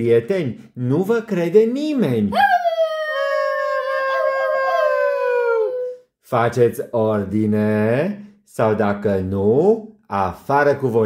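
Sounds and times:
dog-like howl: 2.3s - 6.0s.

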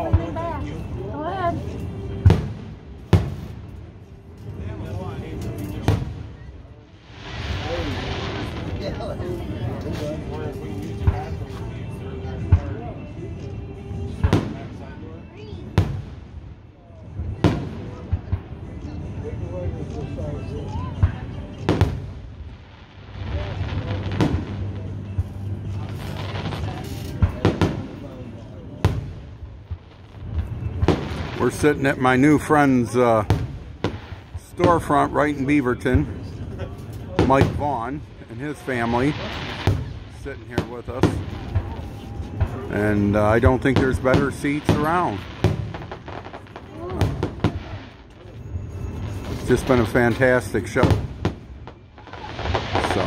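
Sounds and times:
fireworks shells bursting: 36.8s - 53.0s.

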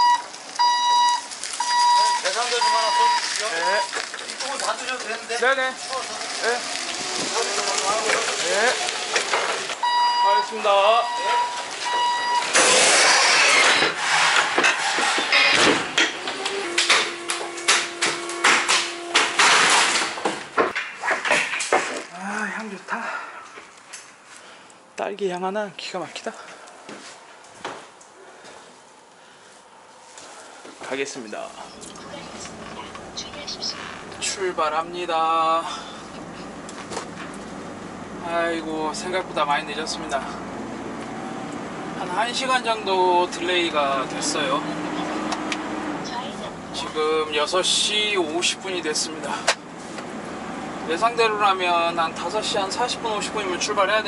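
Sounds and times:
truck engine and road drone: 4.1s - 20.9s, 31.6s - 54.0s
knocks and clatters: 12.6s - 22.1s.

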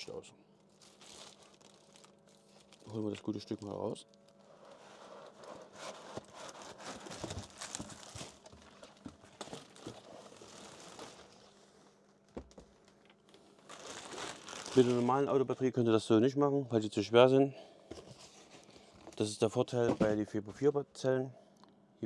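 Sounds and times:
plastic bag rustling and crinkling: 0.7s - 15.8s.

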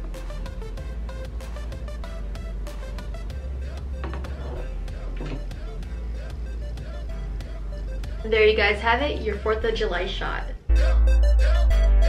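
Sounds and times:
music with heavy bass beat: 0.0s - 8.3s, 10.7s - 12.0s.

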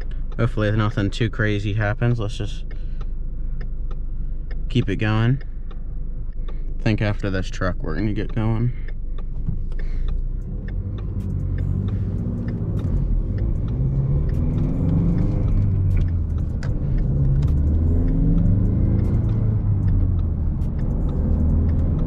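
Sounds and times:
car engine accelerating: 0.0s - 22.0s.

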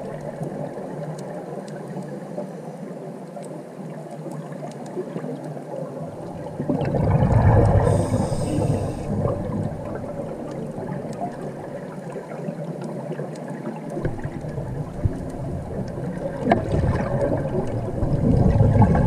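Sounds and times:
underwater bubbles gurgling: 0.0s - 19.0s
brief hiss: 7.8s - 9.2s.

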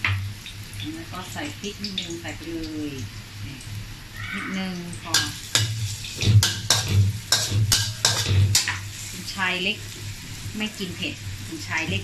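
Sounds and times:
light sizzle of frying: 0.0s - 12.0s
metal ladle scraping a wok: 5.1s - 9.3s.

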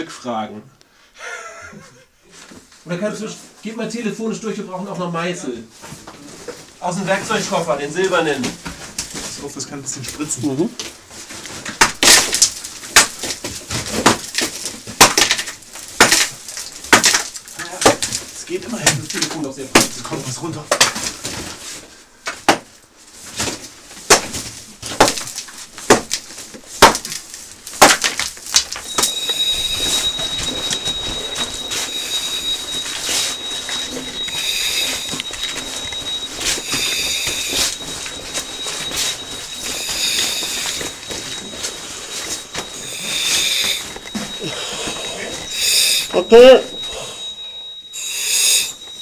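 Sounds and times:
high-pitched whistle-like tone: 28.8s - 49.0s
hiss: 34.3s - 35.1s, 39.8s - 40.8s, 42.8s - 43.8s, 45.5s - 46.1s, 48.0s - 48.8s.

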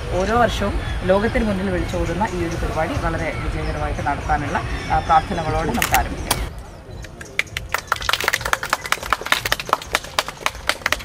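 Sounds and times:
people clapping: 7.0s - 11.0s.

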